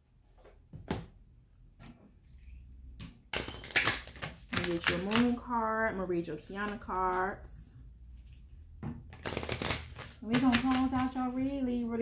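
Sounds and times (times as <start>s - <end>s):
cards being shuffled: 3.4s - 5.4s, 9.1s - 11.4s.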